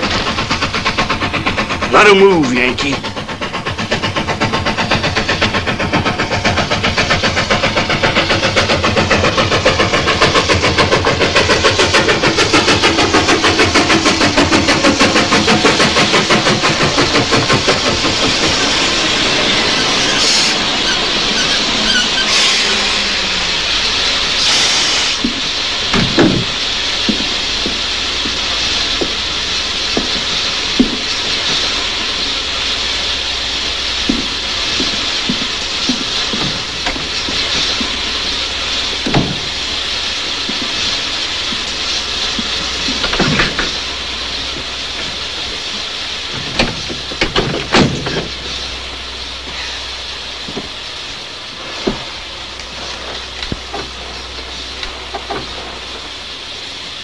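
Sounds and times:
steam hissing: 0.0s - 57.0s
steam train chugging: 0.0s - 57.0s
clanks and knocks: 25.2s - 28.4s, 29.9s - 31.7s, 34.1s - 38.3s, 38.9s - 39.6s, 42.3s - 43.8s, 46.3s - 48.6s, 53.1s - 55.7s.

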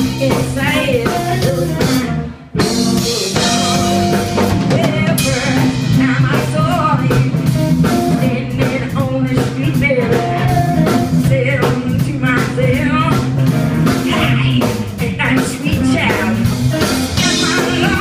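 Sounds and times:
blues-rock band playing: 0.0s - 18.0s.

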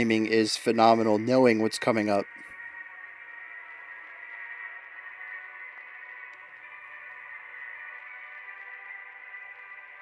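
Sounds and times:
quiet music of held tones: 0.0s - 10.0s.

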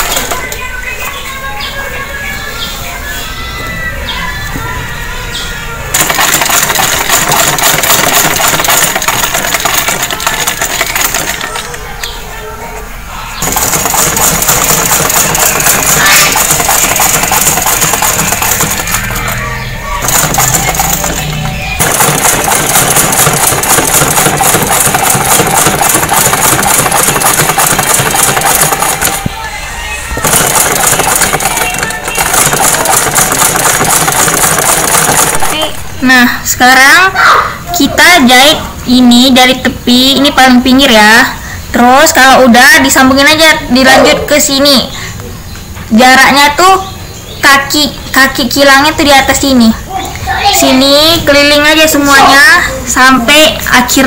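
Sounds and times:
sewing machine stitching: 5.9s - 11.8s, 13.4s - 19.4s, 20.0s - 29.3s, 30.2s - 35.8s.

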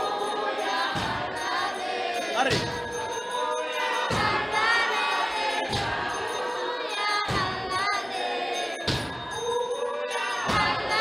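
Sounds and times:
congregation singing gospel song: 0.0s - 11.0s.

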